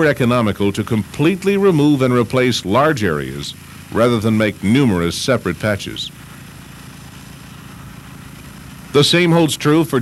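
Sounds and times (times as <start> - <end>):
engine rumbling steadily: 0.0 - 10.0.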